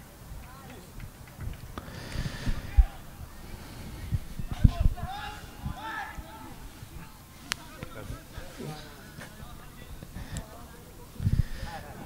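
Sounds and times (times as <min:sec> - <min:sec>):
distant players calling: 0:00.0 - 0:12.0.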